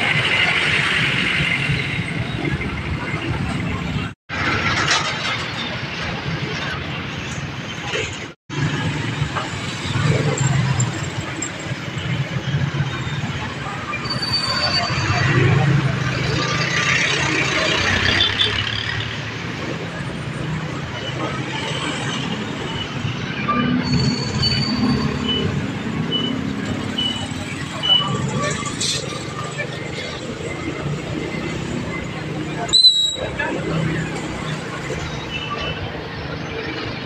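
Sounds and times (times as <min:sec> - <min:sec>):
slow street traffic engines: 0:00.0 - 0:37.0.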